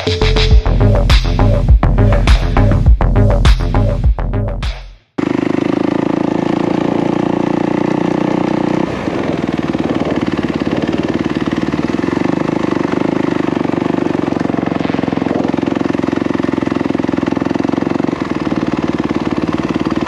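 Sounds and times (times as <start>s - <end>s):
dirt bike engine at low revs: 5.2s - 20.0s.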